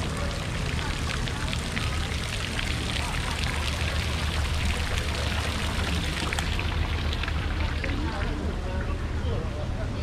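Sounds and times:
fountain water splashing: 0.0 - 8.6.

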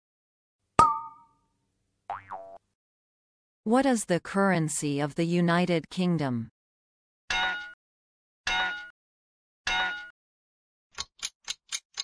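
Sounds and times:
springy cartoon boing: 0.8 - 1.3, 2.1 - 2.6.

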